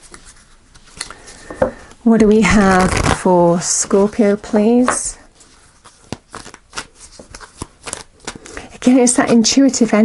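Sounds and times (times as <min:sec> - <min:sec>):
cards being shuffled by hand: 0:00.0 - 0:01.6, 0:02.4 - 0:09.8
woman speaking: 0:02.0 - 0:05.3, 0:08.8 - 0:10.0.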